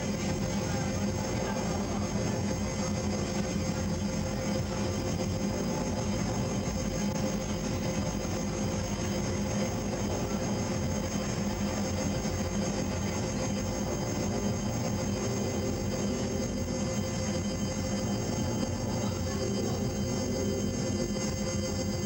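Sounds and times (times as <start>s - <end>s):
electronic drone music: 0.0s - 22.0s.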